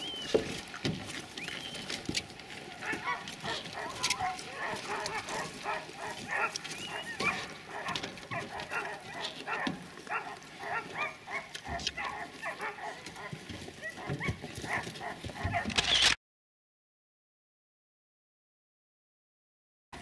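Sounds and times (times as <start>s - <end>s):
chorus of short animal calls: 2.7s - 16.2s.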